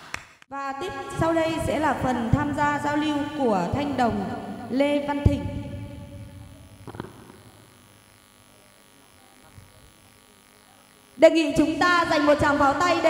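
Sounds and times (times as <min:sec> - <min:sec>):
voice with echo: 0:00.5 - 0:07.6, 0:11.2 - 0:13.0.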